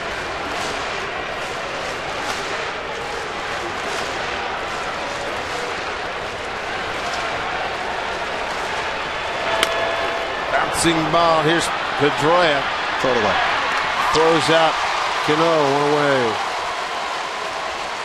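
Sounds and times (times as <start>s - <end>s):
ballpark crowd din: 0.0s - 18.0s
scattered clapping: 0.0s - 18.0s.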